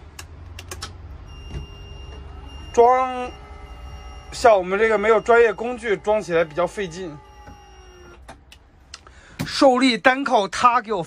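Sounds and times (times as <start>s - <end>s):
man speaking: 4.3s - 7.2s.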